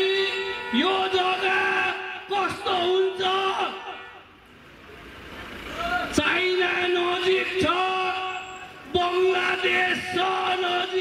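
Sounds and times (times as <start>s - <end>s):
man shouting over loudspeaker: 0.0s - 4.3s, 5.8s - 11.0s.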